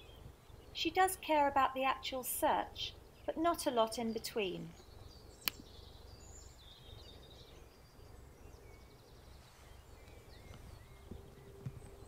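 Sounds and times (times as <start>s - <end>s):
small birds singing and chirping: 0.0s - 12.0s.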